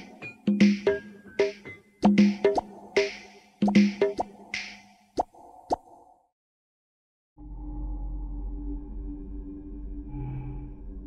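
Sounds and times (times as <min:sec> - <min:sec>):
percussive pops in music: 0:00.5 - 0:04.8.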